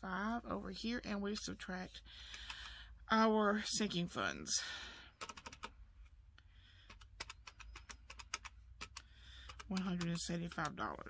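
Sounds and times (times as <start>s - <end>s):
calculator keys clicking: 5.2s - 5.8s, 6.8s - 11.0s.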